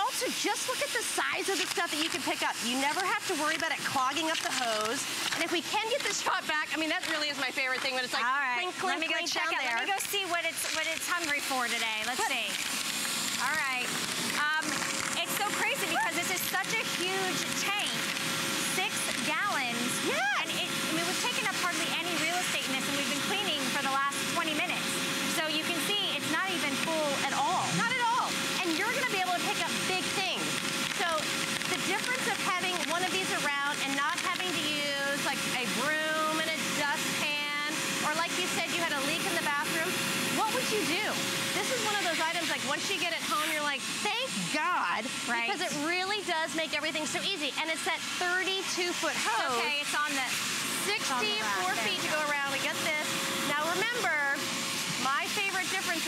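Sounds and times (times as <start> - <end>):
women talking: 0.0 - 12.6, 13.4 - 18.0, 18.6 - 56.0
wet dry vacuum running: 0.0 - 56.0.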